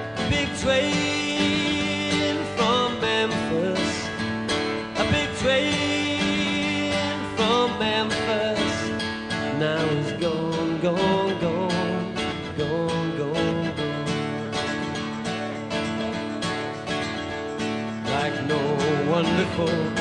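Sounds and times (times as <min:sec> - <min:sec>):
person singing: 0:00.0 - 0:14.8, 0:18.0 - 0:20.0
strummed acoustic guitar: 0:00.0 - 0:20.0.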